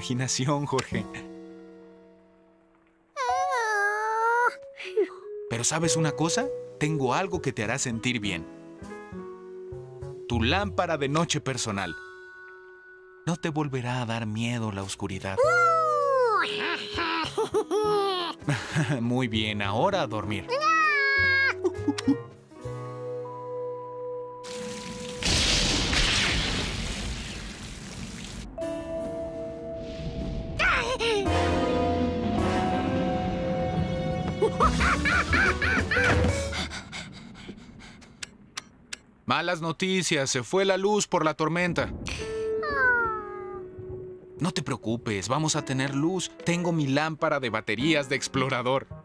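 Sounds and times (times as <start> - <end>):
low rumble: 36.2 - 40.1.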